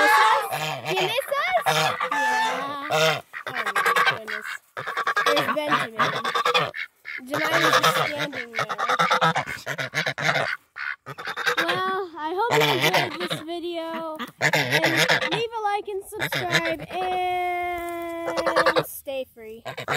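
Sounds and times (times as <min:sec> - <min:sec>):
geese honking: 0:00.0 - 0:17.4, 0:18.2 - 0:18.9, 0:19.6 - 0:19.9.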